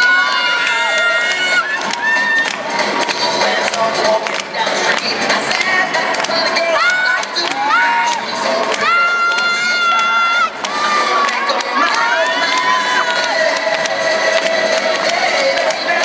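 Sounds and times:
audience cheering: 0:00.0 - 0:02.6, 0:06.7 - 0:13.6
high-pitched shouts and calls: 0:06.6 - 0:13.5.

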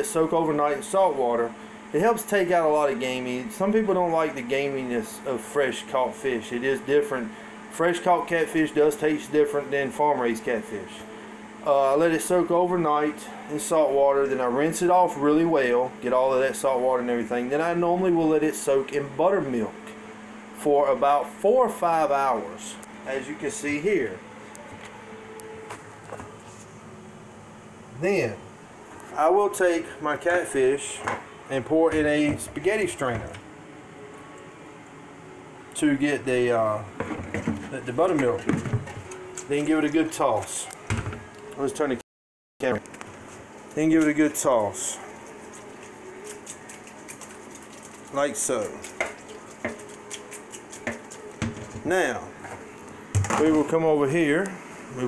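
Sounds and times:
kitchen appliance humming: 0:00.0 - 0:42.0, 0:42.6 - 0:55.0
colander knocking in metal sink: 0:50.8 - 0:51.9.

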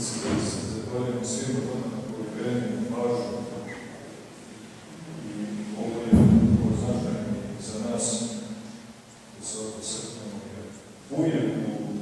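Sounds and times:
man lecturing: 0:00.0 - 0:04.1, 0:05.5 - 0:12.0
hall room noise: 0:00.0 - 0:12.0.

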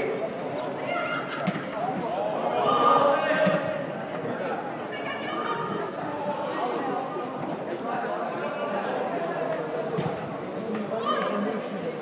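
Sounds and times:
players shouting in echoing hall: 0:00.8 - 0:09.2, 0:10.6 - 0:11.8.

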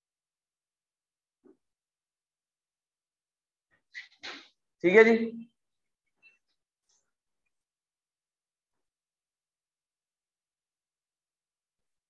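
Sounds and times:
man speaking: 0:04.8 - 0:05.5.

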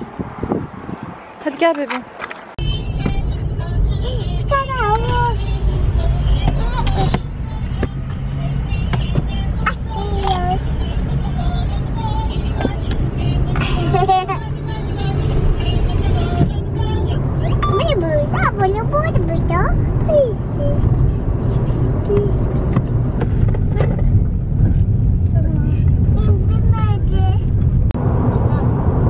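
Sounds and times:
car engine and tyre rumble: 0:00.0 - 0:29.0.

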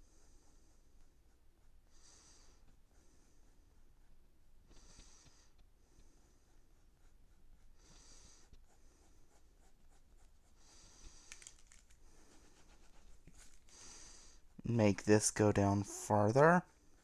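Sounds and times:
pencil sketching on paper: 0:00.0 - 0:17.0.

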